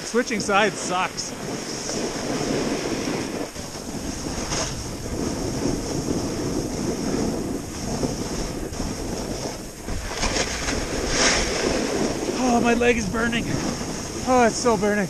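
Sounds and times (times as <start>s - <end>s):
snowboard sliding on snow: 0.0s - 15.0s
wind rushing over microphone: 0.0s - 15.0s.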